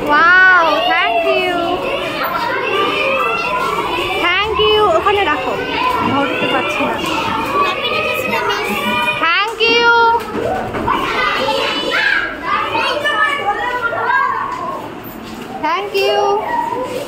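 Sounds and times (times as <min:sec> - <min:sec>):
children shouting and chattering: 0:00.0 - 0:17.0.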